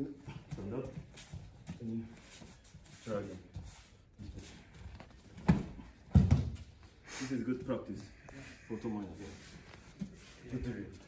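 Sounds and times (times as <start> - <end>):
soft scuffs on mat: 0.4 - 6.8, 9.0 - 11.0
body hitting judo mat: 5.0 - 6.8.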